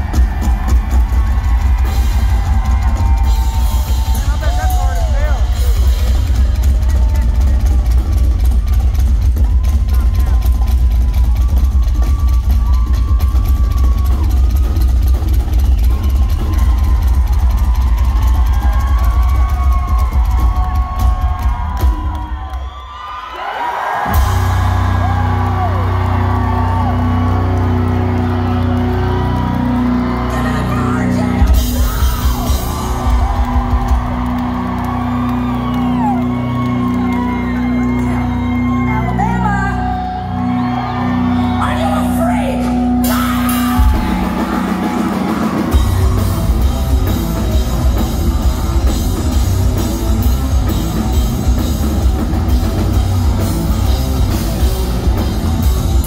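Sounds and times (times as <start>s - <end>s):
rock drum solo: 0.0s - 22.9s, 23.5s - 56.0s
crowd cheering and whooping: 0.0s - 56.0s.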